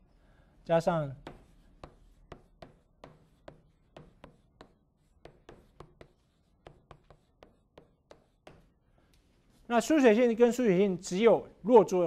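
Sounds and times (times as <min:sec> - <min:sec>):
chalk tapping on chalkboard: 0:01.1 - 0:08.8.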